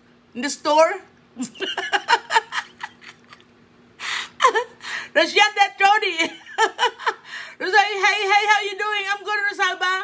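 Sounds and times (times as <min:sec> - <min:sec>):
woman laughing: 0:01.4 - 0:05.1, 0:06.0 - 0:07.5
woman gasping: 0:04.0 - 0:05.2, 0:07.2 - 0:07.6.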